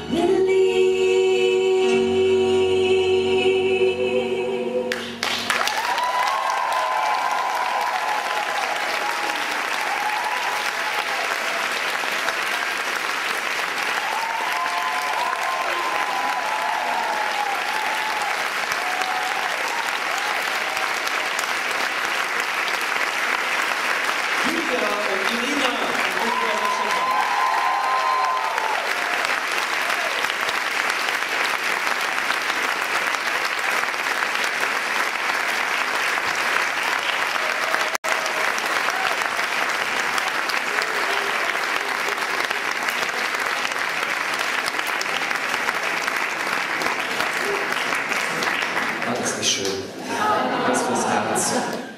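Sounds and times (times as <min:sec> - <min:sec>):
crowd applause: 0:04.9 - 0:51.9.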